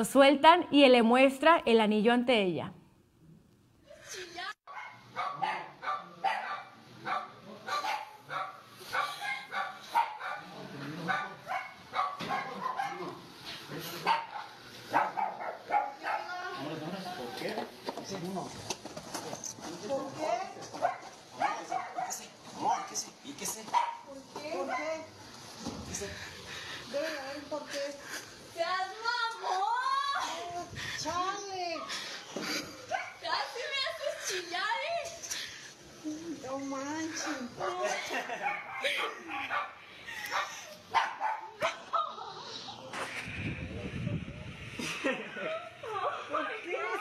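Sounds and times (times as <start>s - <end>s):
dog barking: 4.7s - 13.2s, 14.0s - 16.4s, 20.8s - 23.0s, 23.7s - 25.0s, 37.6s - 42.2s.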